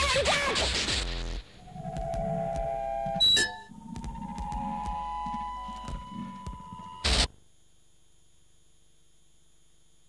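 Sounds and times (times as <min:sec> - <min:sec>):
electronic beeping: 0:01.6 - 0:07.3.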